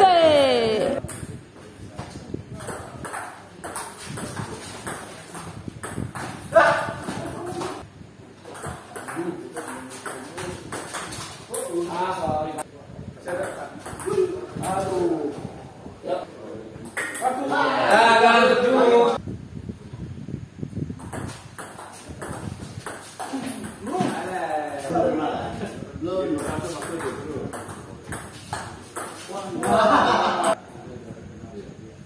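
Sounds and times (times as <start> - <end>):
table tennis ball hitting paddles: 2.0 - 7.9, 8.5 - 11.9, 16.8 - 17.3, 21.0 - 24.4, 26.4 - 30.6.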